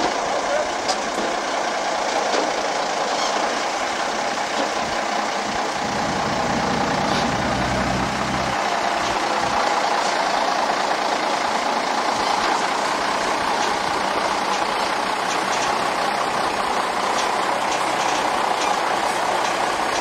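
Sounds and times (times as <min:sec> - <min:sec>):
lorry diesel engine running: 0:00.0 - 0:20.0
deep rumble: 0:05.5 - 0:08.6.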